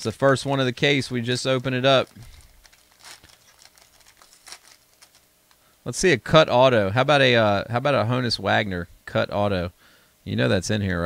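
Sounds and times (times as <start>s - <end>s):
foil wrapper crinkling: 1.2s - 5.6s.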